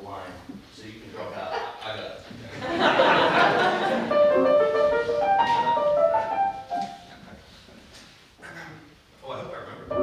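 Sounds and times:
grand piano run: 0:03.4 - 0:07.2.

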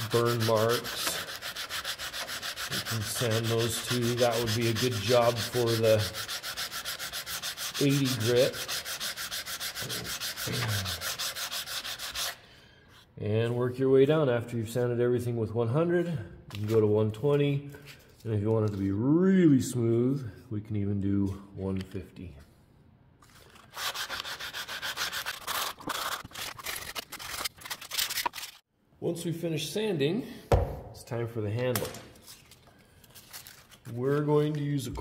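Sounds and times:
sandpaper rubbing wood: 0:00.0 - 0:12.4, 0:23.6 - 0:28.6.

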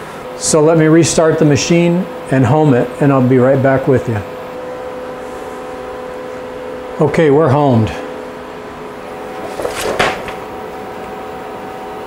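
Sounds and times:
milling machine hum: 0:00.0 - 0:12.0
paper rustle and knock: 0:09.3 - 0:10.5.

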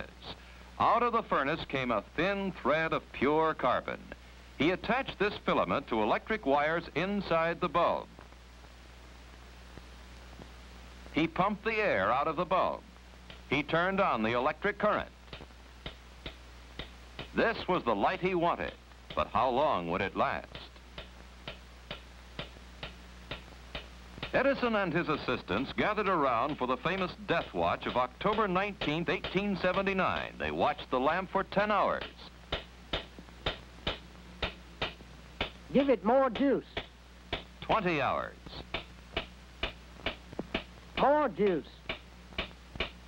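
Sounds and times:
faint low hum: 0:00.0 - 0:43.0
clock ticking: 0:26.4 - 0:30.4.

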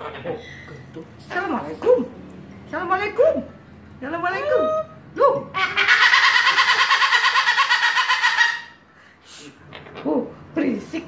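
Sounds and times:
cockatoo pulsing call: 0:05.6 - 0:08.8.

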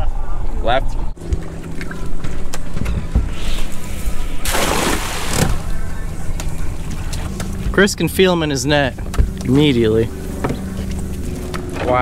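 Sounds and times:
outboard motor humming: 0:01.2 - 0:12.0.

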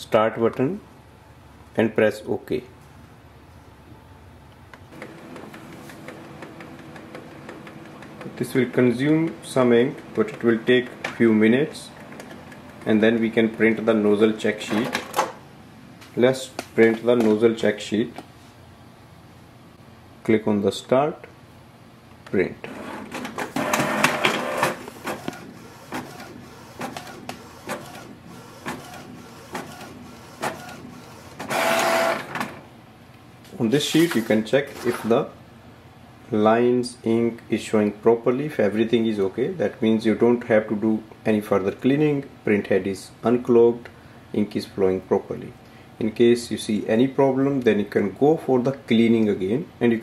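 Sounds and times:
printer clicks: 0:04.9 - 0:08.4, 0:23.1 - 0:32.6
printer motor hum: 0:04.9 - 0:14.1, 0:22.7 - 0:32.6.

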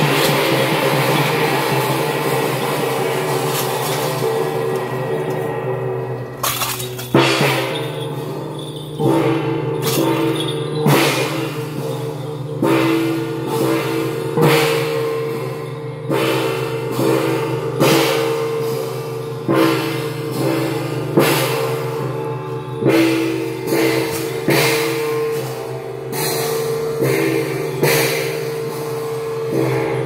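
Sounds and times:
cymbals struck: 0:00.0 - 0:30.0
hand gongs ringing: 0:00.0 - 0:30.0.

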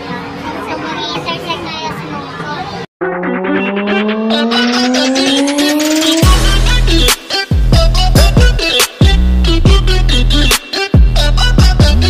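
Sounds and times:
many overlapping voices: 0:00.0 - 0:02.9.

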